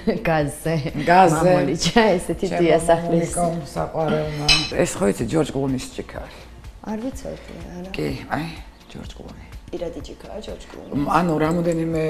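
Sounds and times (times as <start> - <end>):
woman talking: 0.0 - 4.5
crockery and metal cup clinking: 4.1 - 5.2, 10.5 - 12.0.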